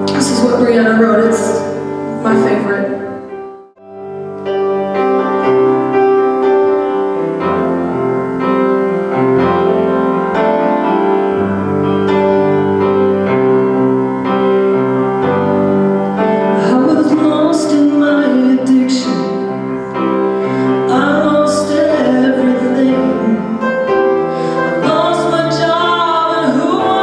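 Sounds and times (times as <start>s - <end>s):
upright piano chords: 0.0s - 27.0s.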